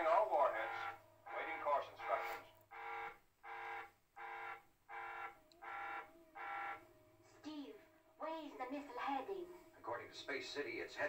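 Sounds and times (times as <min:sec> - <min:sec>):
electronic alarm buzzer pulses: 0:00.0 - 0:06.8.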